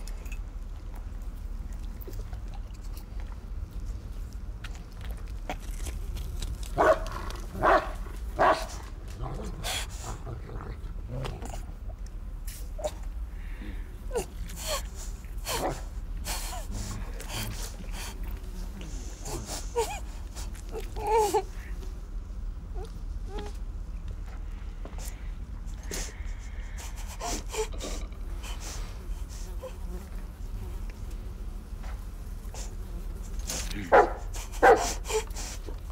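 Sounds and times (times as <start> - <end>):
low steady hum: 0.0 - 35.9
woman whimpering and moaning: 19.4 - 21.6.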